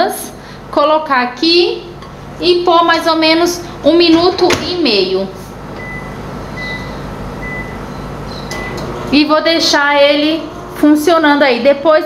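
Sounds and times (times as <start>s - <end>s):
microwave oven humming: 0.0s - 12.0s
keypad beeps: 5.8s - 8.8s.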